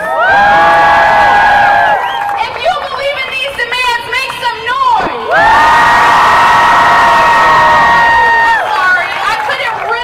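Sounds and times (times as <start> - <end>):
crowd cheering and whooping: 0.0 - 2.6, 5.0 - 10.0.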